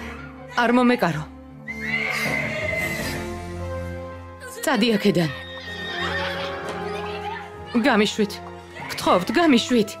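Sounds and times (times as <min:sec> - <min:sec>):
background music: 0:00.0 - 0:10.0
horse whinnying: 0:01.6 - 0:03.4, 0:05.3 - 0:06.8.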